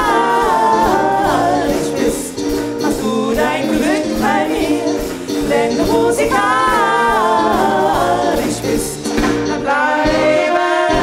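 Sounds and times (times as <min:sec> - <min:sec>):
live band with drum kit: 0:00.0 - 0:11.0
male singers singing: 0:00.0 - 0:11.0.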